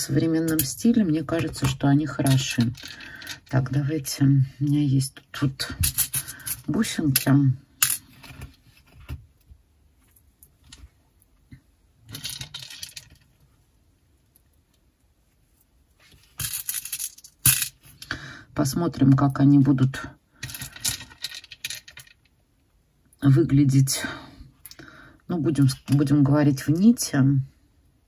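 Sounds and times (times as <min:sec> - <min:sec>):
metal beads clicking: 0:16.4 - 0:18.1.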